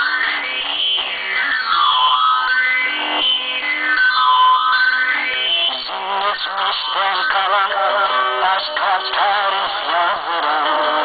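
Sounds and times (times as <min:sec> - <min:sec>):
person singing ornamented melody: 0:05.5 - 0:11.0.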